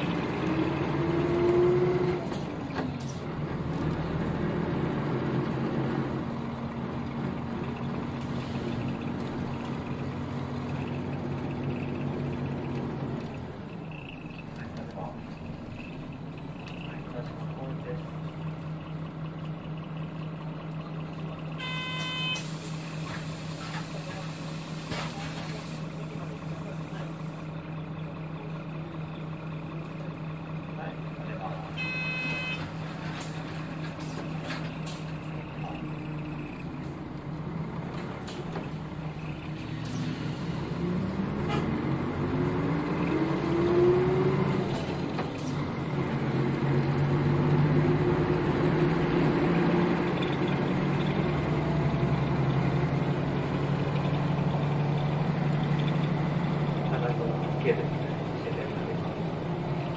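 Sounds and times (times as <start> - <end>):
bus diesel engine: 0.0 - 59.9.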